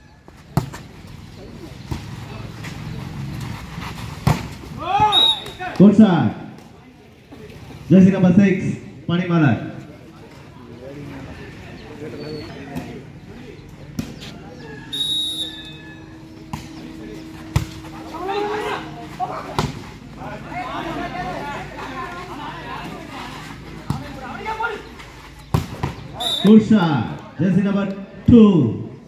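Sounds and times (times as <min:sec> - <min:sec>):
people shouting: 0:04.7 - 0:05.8, 0:17.9 - 0:23.0.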